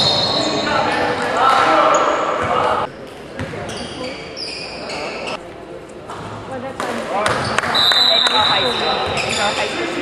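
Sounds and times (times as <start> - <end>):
voices in a gymnasium: 0.0 - 10.0.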